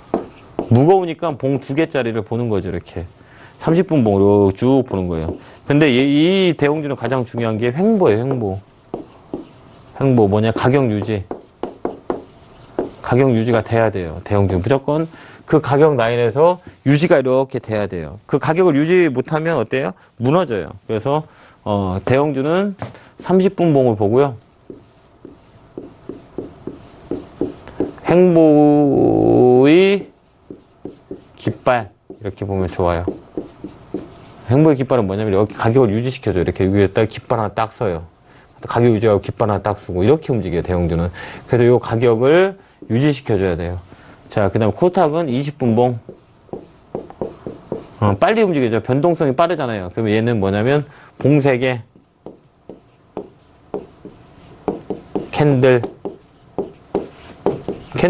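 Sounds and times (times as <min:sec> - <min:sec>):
pen tapping on touchscreen: 0:11.0 - 0:13.0, 0:52.0 - 0:57.9.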